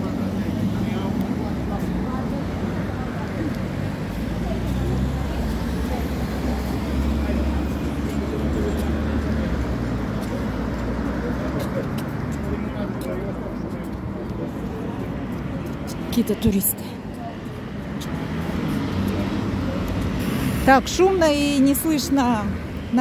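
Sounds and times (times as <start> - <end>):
people talking indistinctly: 0.0 - 23.0
road traffic: 0.0 - 23.0.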